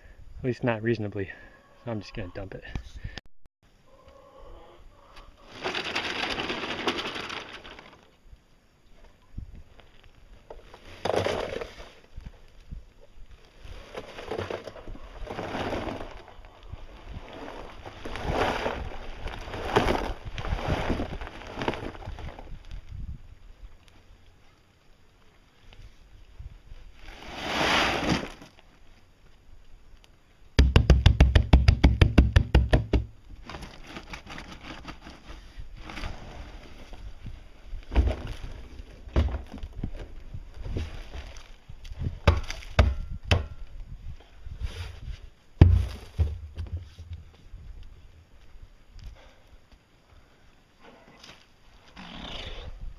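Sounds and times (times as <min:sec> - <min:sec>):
concrete mix tumbling in plastic drum: 0:05.5 - 0:08.2, 0:10.5 - 0:12.3, 0:13.6 - 0:23.0, 0:30.6 - 0:43.6
knocks: 0:30.6 - 0:33.1.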